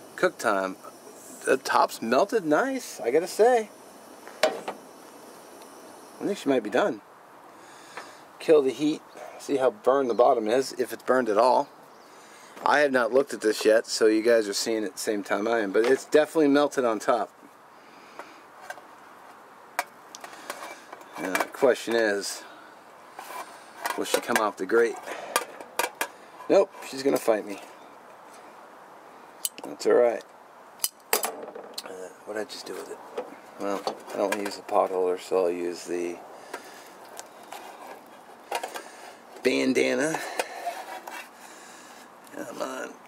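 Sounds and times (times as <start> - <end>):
plastic spatula scraping a pan: 40.0 - 41.4.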